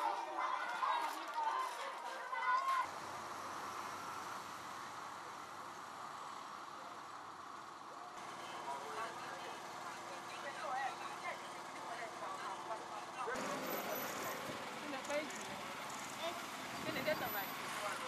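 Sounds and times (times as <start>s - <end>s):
distant people talking: 8.0s - 18.0s.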